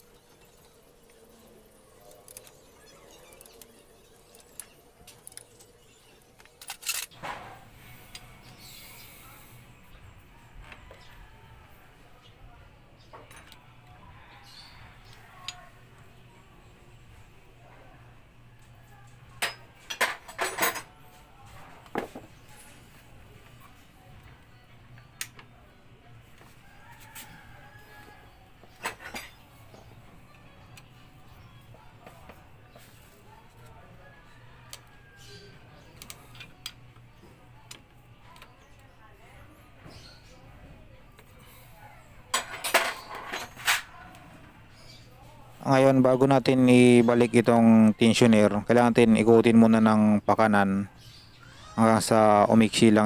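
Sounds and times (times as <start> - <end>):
metal tools clinking: 19.4 - 21.0.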